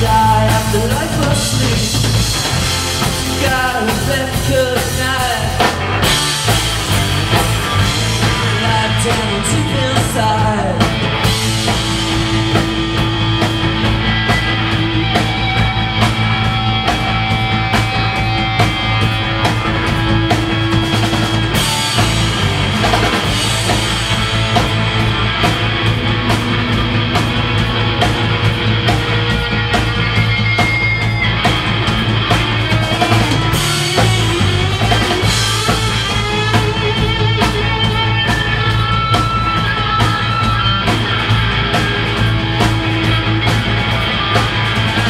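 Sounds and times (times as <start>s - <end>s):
drum kit beat: 0.0s - 45.0s
rock band playing: 0.0s - 45.0s
sustained guitar: 0.0s - 45.0s.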